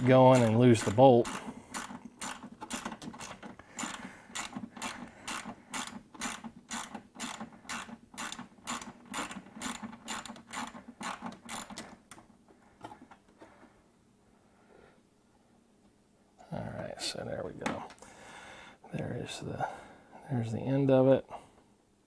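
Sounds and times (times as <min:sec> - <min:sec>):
ratchet wrench clicking: 0:00.0 - 0:11.8.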